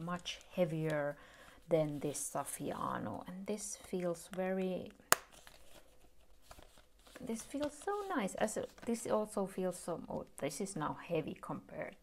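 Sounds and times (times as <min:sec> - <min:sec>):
faint rustling and handling: 0:00.0 - 0:09.9.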